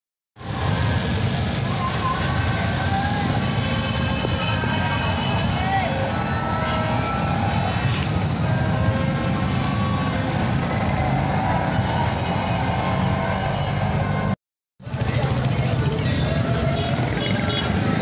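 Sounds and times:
motorcycle and car engines passing: 0:00.4 - 0:18.0.

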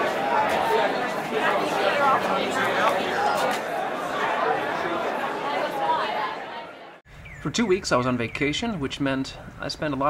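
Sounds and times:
audience chatter: 0:00.0 - 0:07.0.

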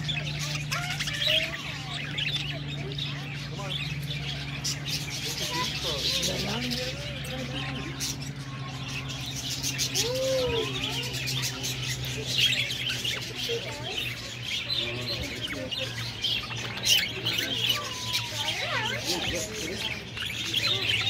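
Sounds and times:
budgerigars chirping: 0:00.0 - 0:21.0.

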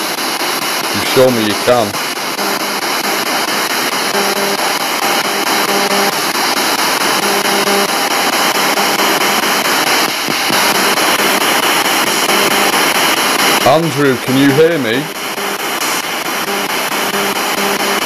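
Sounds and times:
radio static hiss: 0:00.0 - 0:18.0
snatches of broadcast: 0:00.0 - 0:18.0.

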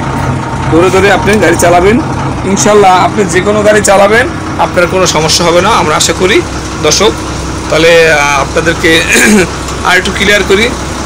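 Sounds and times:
bus engine idling: 0:00.0 - 0:11.0
man talking: 0:00.7 - 0:10.8.

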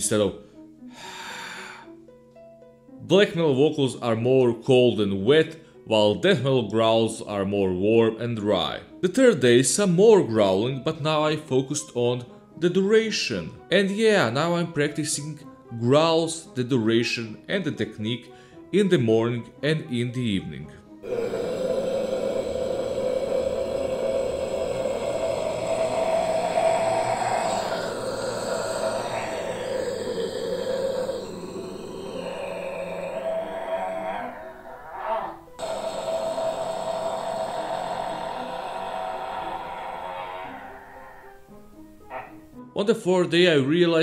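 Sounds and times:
quick breath: 0:00.4 - 0:02.0, 0:21.0 - 0:41.5
man growling: 0:21.0 - 0:42.4.

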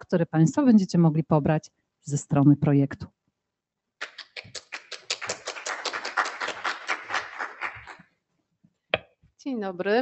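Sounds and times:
small audience applauding: 0:04.0 - 0:08.1.

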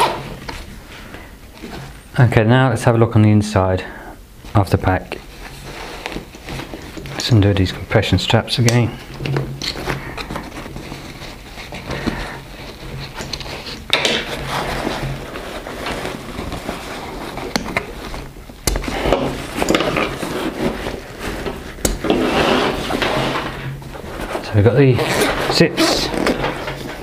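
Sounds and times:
fabric and webbing rustling: 0:04.4 - 0:27.0.

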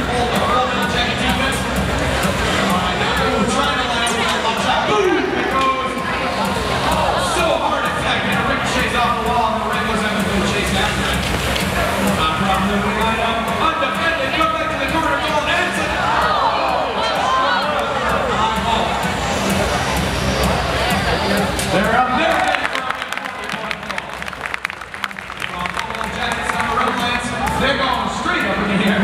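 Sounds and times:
crowd noise: 0:00.0 - 0:29.0
music over public address: 0:00.0 - 0:29.0
announcer's voice: 0:02.3 - 0:11.3, 0:20.9 - 0:29.0.

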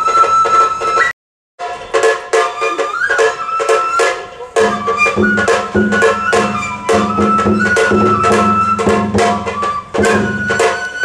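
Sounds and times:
bamboo flute melody: 0:00.0 - 0:11.0
quick steady beat: 0:04.4 - 0:10.6.

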